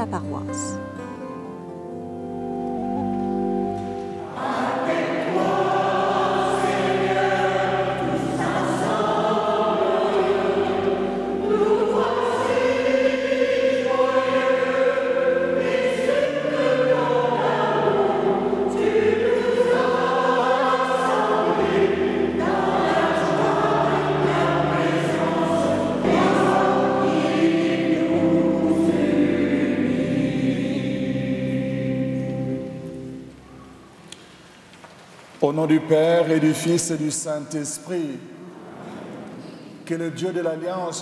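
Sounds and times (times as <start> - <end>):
held instrumental chords: 0.0 - 34.1
choir singing a hymn: 2.9 - 33.6, 35.9 - 37.7.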